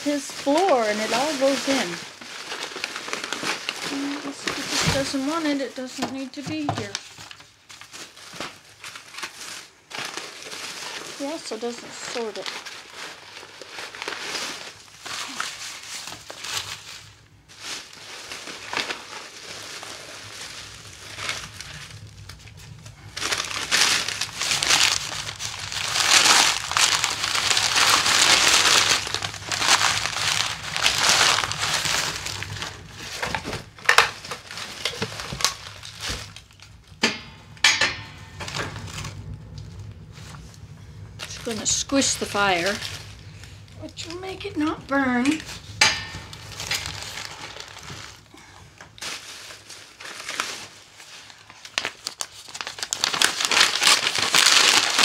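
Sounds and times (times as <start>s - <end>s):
paper and plastic crinkling: 0.0s - 37.0s, 38.0s - 55.0s.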